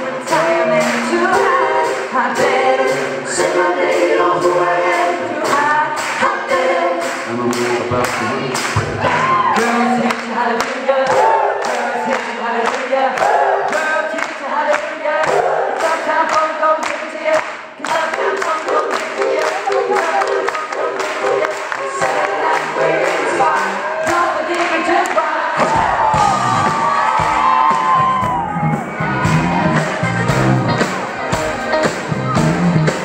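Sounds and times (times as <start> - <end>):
male a cappella harmony singing: 0.0 - 25.8
handclap beat: 0.3 - 3.0, 3.9 - 28.4
band drums and bass: 4.9 - 9.9, 25.6 - 33.0
crowd cheering: 7.4 - 10.1, 11.0 - 12.2, 18.9 - 33.0.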